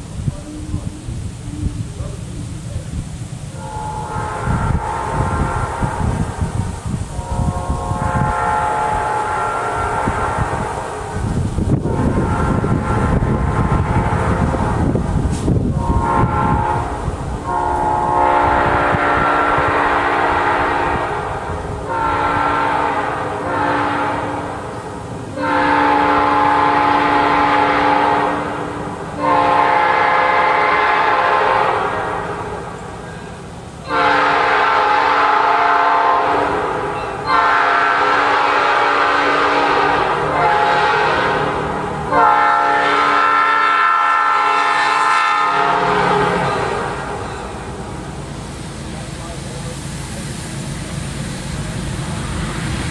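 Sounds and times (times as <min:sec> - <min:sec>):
locomotive horn chord blasts: 0:03.5 - 0:06.5, 0:07.1 - 0:15.1, 0:15.7 - 0:32.7, 0:33.8 - 0:47.9.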